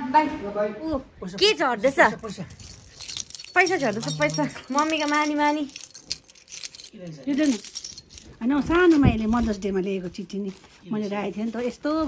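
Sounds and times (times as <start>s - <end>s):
metal keys jangling: 1.9s - 8.9s.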